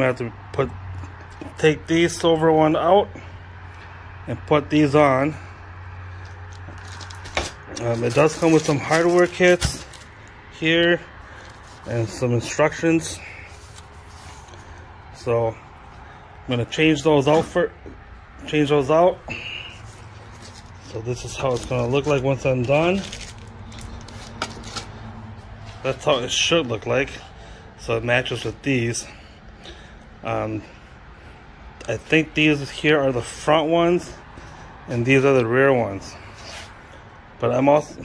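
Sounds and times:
sharp plastic crackles: 6.1s - 10.4s, 20.2s - 25.8s
plastic wrapping crinkling: 6.2s - 10.4s, 19.8s - 25.8s
plastic bag crinkle and metal clink: 6.7s - 10.1s.

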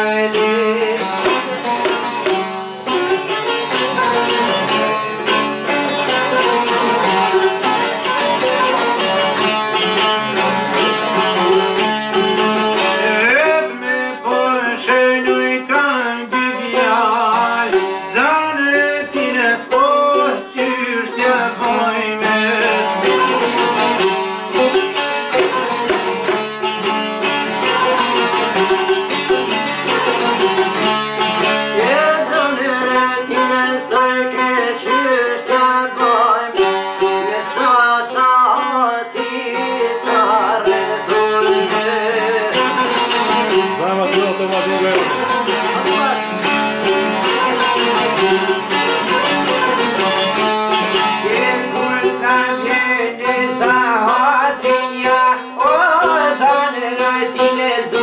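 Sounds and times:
lutes playing fast folk tune: 0.0s - 58.0s.

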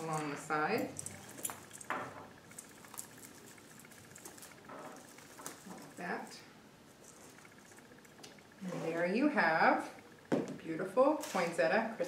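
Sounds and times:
leaves rustling: 0.0s - 9.6s.

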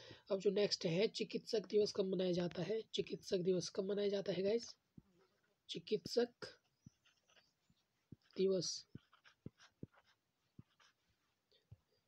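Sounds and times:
stylus tapping and scratching on screen: 0.5s - 12.0s.

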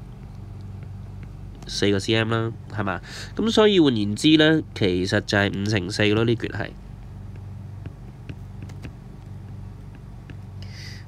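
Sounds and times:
steady low hum: 0.0s - 11.0s
stylus tapping on glass screen: 7.0s - 10.7s.

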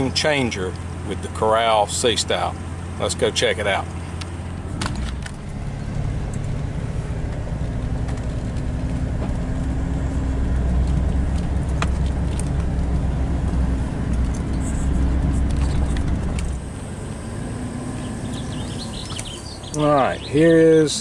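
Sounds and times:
vehicle engine and tyre rumble: 0.0s - 21.0s.

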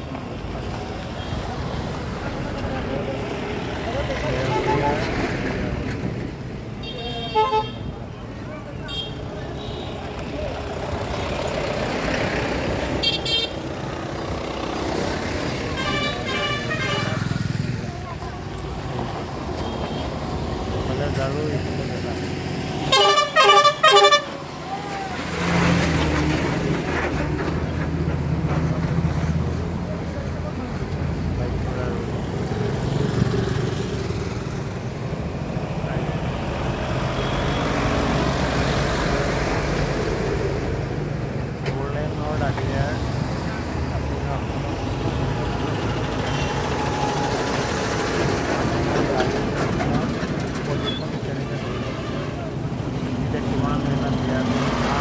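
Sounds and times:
passing traffic engines: 0.0s - 55.0s
vehicle horns honking: 4.4s - 5.1s, 6.8s - 7.9s, 13.0s - 13.6s, 15.7s - 17.3s, 22.8s - 24.5s, 37.0s - 38.0s, 46.2s - 47.0s
heavy engine rumble: 7.8s - 55.0s.

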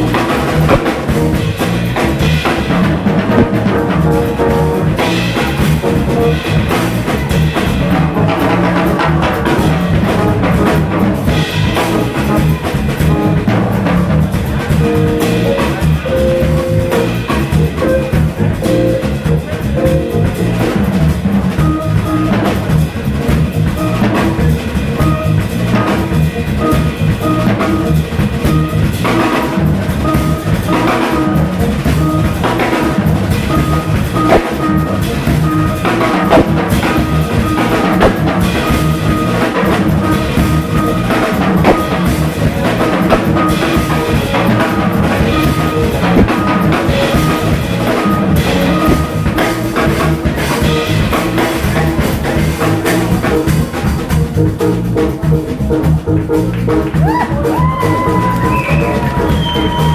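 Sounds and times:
drum kit: 0.0s - 59.9s
electric bass line: 0.0s - 59.9s
keyboard playing: 0.0s - 59.9s.

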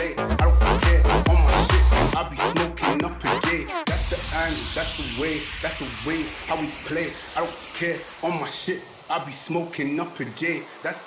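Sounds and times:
pitched vocal or synth line: 0.0s - 10.2s
hissing noise sweep: 3.8s - 11.0s.

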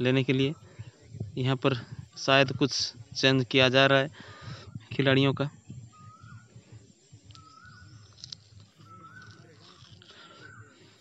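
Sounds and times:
faint distant voices: 0.0s - 11.0s
bird whistling call: 5.8s - 11.0s.

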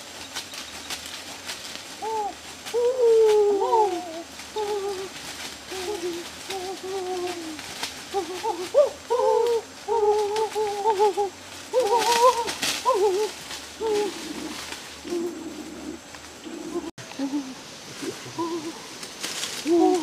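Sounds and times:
undergrowth rustling: 0.0s - 20.0s.

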